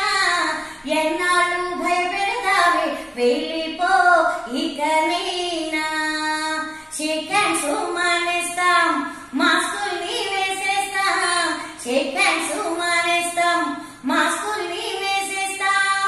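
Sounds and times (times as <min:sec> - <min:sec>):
woman singing: 0:00.0 - 0:16.0.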